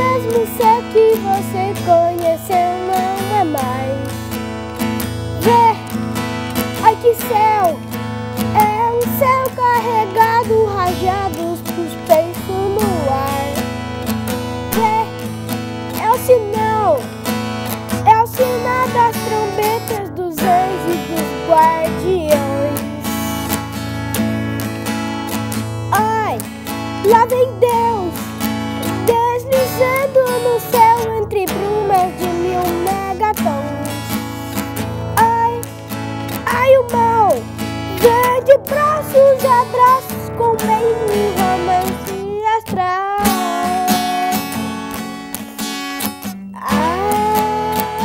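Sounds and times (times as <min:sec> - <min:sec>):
boy singing: 0:00.0 - 0:04.2, 0:05.3 - 0:06.0, 0:06.6 - 0:13.7, 0:14.7 - 0:17.1, 0:17.9 - 0:23.5, 0:25.9 - 0:34.3, 0:35.2 - 0:45.2, 0:46.3 - 0:48.0
acoustic guitar strumming: 0:00.0 - 0:48.0.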